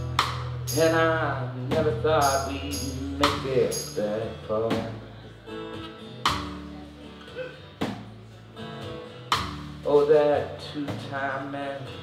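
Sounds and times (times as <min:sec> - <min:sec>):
drums: 0:00.0 - 0:05.2, 0:06.0 - 0:11.6
country band playing: 0:00.0 - 0:12.0
strummed acoustic guitar: 0:00.0 - 0:12.0
upright bass: 0:00.0 - 0:12.0.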